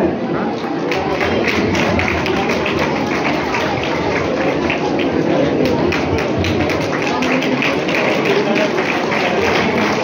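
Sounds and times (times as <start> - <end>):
crowd clapping in unison: 0.6 - 10.0.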